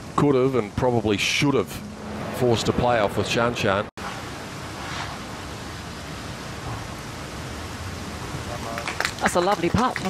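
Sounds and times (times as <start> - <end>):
steady outdoor hiss: 0.0 - 10.0.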